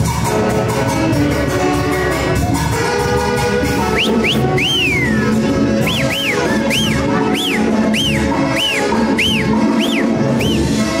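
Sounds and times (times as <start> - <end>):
band playing dance music: 0.0 - 11.0
rising and falling whistles: 3.9 - 10.8.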